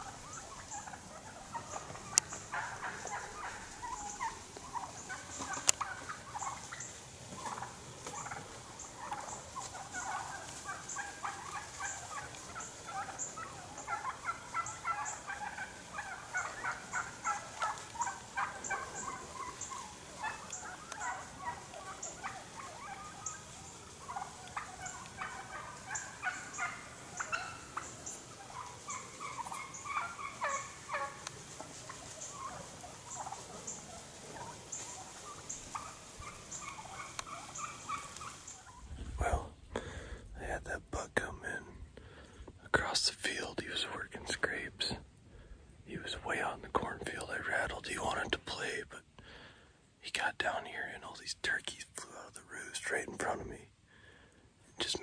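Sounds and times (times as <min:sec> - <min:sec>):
flock of birds calling: 0:00.0 - 0:40.2.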